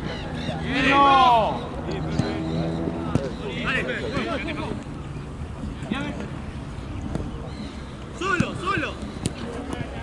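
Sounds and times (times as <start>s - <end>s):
players calling out: 0.0s - 4.9s
ball being kicked: 3.1s - 3.3s.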